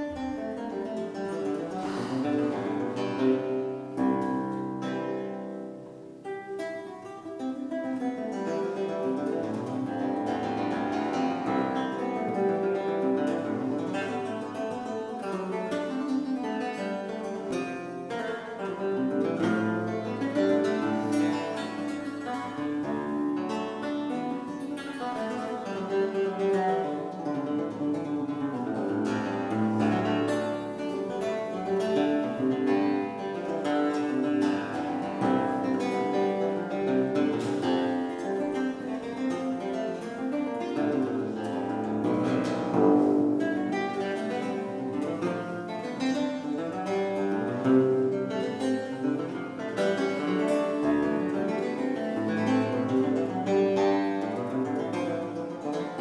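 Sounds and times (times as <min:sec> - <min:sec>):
plucked theorbo: 0:00.0 - 0:56.0.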